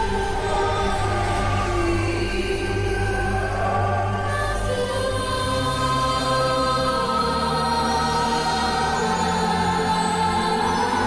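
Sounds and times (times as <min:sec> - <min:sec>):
choir holding sustained chords: 0:00.0 - 0:11.0.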